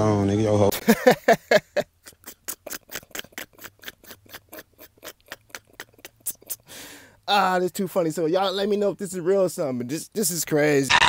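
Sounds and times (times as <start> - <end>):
person laughing breathily: 0.9 - 7.1.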